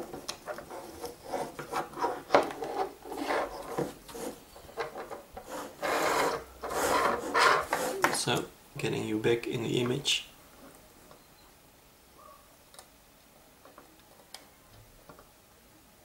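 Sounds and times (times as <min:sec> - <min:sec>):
rubbing and scraping handling noise: 0:00.0 - 0:08.5.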